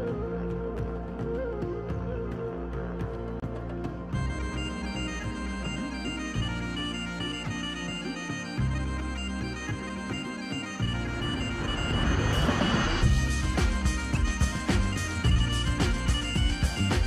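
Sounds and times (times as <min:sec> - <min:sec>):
bagpipe melody over drone: 0:03.9 - 0:17.0.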